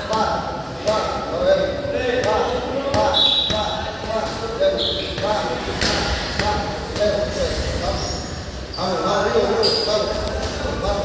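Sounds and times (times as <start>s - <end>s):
voices in background: 0.0s - 11.0s.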